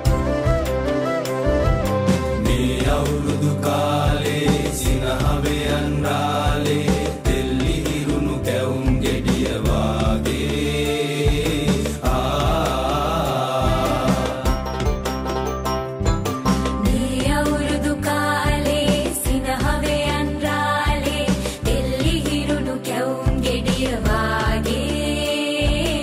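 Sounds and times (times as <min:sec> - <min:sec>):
bass line: 0:00.0 - 0:22.7, 0:23.3 - 0:26.0
drum beat: 0:01.8 - 0:15.3
group of voices singing: 0:02.2 - 0:15.0, 0:16.8 - 0:26.0.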